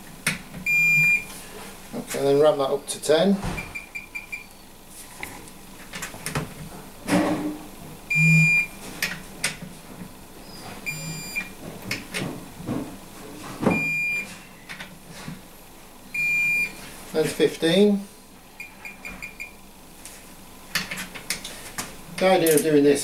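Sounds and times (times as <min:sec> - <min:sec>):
torque wrench beeping: 0:08.1 - 0:08.7, 0:10.9 - 0:11.5.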